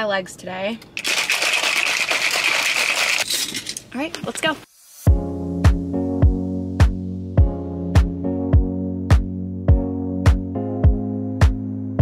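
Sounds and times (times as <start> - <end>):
mixer ball rattling in shaker bottle: 1.0 - 4.4.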